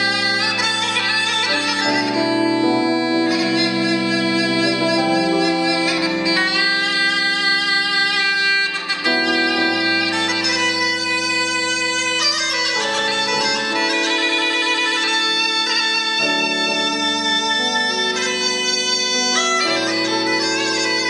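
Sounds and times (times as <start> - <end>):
bagpipe playing melody over drone: 0.0 - 21.0.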